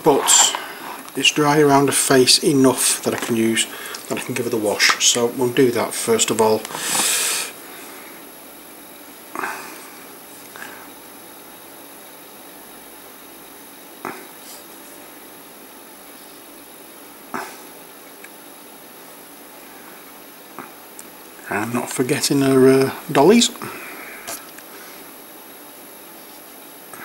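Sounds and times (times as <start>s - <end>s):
faint steady hiss: 0.0s - 27.0s.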